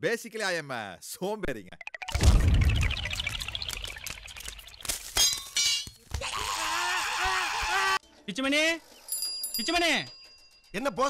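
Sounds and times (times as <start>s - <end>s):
splashing pouring noise: 2.0s - 5.4s.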